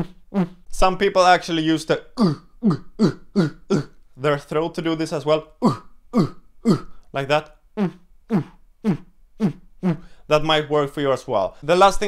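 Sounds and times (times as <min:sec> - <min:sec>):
beatboxed lip synth notes: 0:00.0 - 0:00.7.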